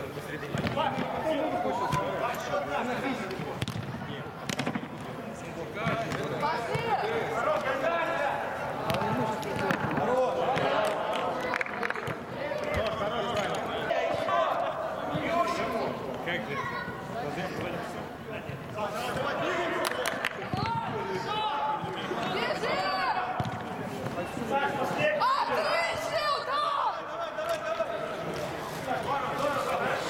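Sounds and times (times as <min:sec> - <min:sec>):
football kicked and bouncing: 0:03.6 - 0:05.1, 0:08.8 - 0:10.7, 0:23.4 - 0:24.2.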